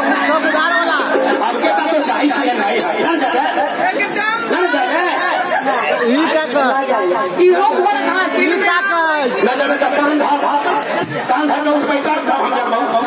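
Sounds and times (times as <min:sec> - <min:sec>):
held musical note: 0:00.0 - 0:02.7, 0:07.4 - 0:10.1
loud crowd chatter: 0:00.0 - 0:13.0.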